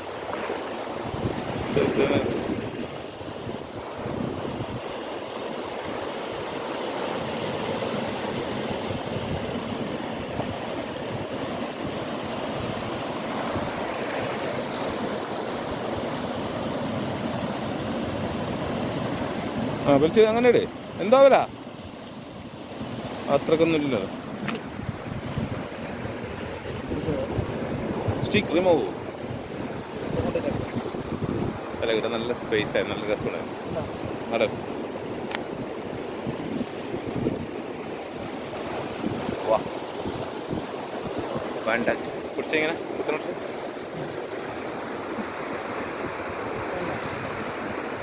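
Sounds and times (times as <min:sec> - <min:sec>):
sea surf: 0:00.0 - 0:48.0
wading through shallow water: 0:00.0 - 0:48.0
wind buffeting microphone: 0:01.0 - 0:04.9, 0:24.2 - 0:42.2
sharp click: 0:35.3 - 0:35.5.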